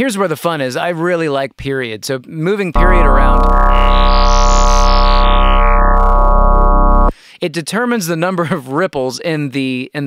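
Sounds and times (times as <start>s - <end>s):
buzzy synth bass note: 2.8s - 7.1s.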